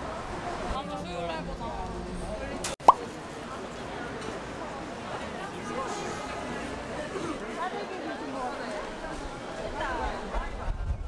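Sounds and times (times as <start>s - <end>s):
street noise: 0.0s - 11.0s.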